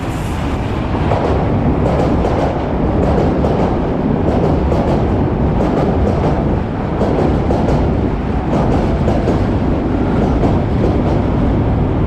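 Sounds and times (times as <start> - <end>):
train rumbling past: 0.0 - 12.0.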